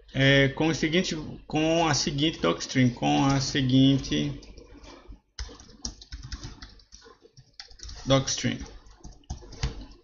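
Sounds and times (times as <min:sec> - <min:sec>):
computer keyboard typing: 0:03.0 - 0:10.0.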